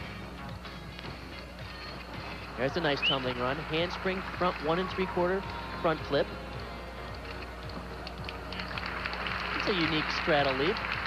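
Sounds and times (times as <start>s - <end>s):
faint music over pa system: 0.0s - 11.0s
crowd noise: 2.3s - 6.0s.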